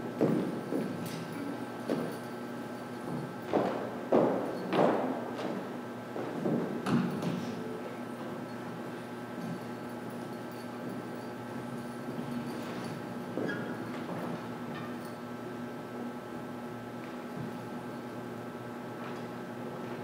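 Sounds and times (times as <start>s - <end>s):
knocks and thuds on wooden stage: 3.4s - 5.6s.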